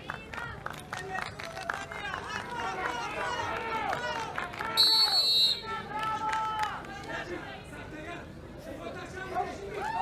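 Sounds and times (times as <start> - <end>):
referee's whistle blown sharply: 4.8 - 5.7.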